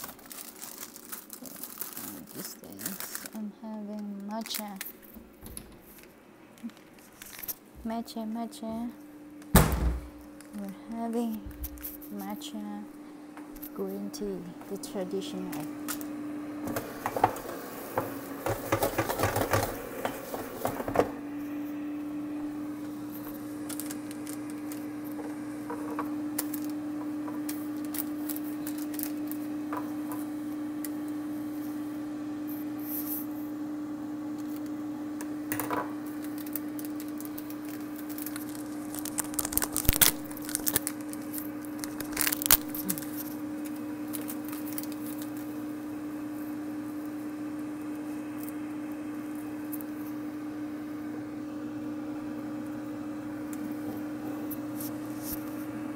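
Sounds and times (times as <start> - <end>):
air fryer fan humming: 0.0 - 55.9.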